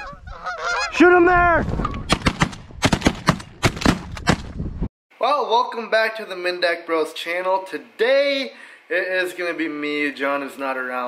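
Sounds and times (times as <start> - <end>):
shotgun shots: 2.1 - 4.5.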